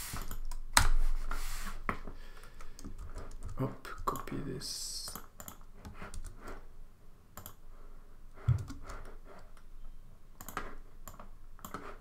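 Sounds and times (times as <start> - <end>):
mouse clicks: 7.4 - 7.6.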